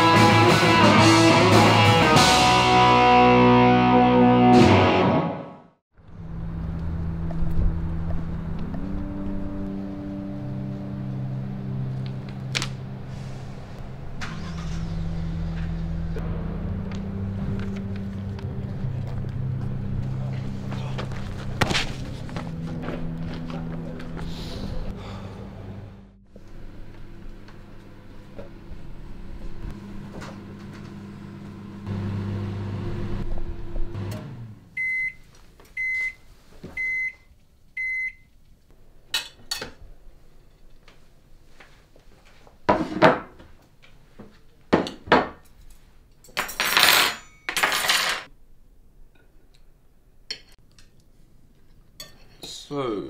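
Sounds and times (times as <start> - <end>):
vehicle engine running: 6.0 - 34.7
microwave oven humming: 25.0 - 35.2.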